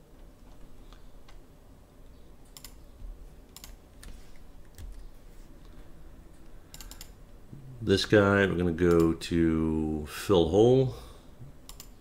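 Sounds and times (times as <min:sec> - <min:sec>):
faint low hum: 0:00.0 - 0:12.0
keyboard and mouse clicks: 0:02.4 - 0:02.9, 0:03.5 - 0:07.2, 0:08.8 - 0:09.2, 0:11.6 - 0:12.0.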